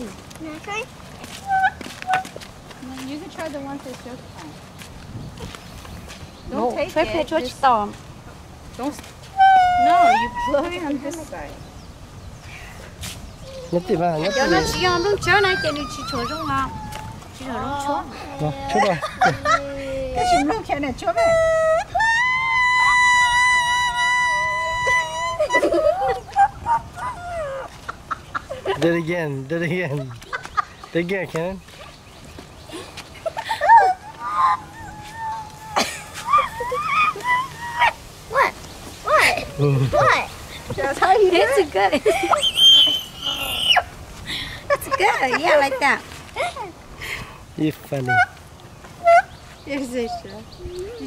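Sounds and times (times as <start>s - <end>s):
leaf whistle squeaks: 9.2s - 10.9s, 21.1s - 27.6s, 42.3s - 43.9s.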